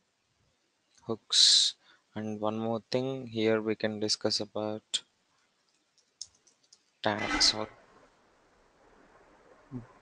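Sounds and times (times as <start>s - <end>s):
keyboard typing: 5.7s - 6.9s.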